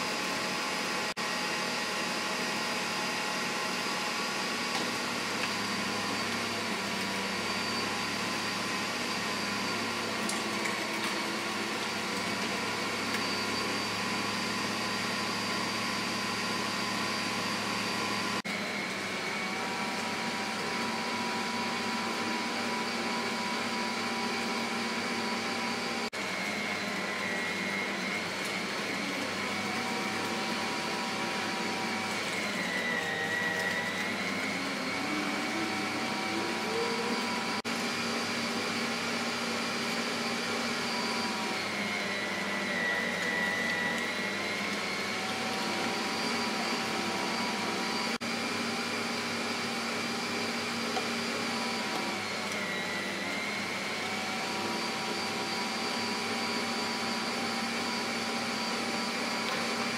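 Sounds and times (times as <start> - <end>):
electric motor whining: 3.6 - 59.9.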